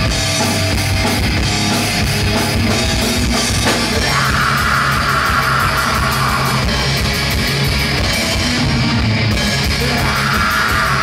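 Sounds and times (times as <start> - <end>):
distorted electric guitars: 0.0 - 11.0
fast drum kit: 0.0 - 11.0.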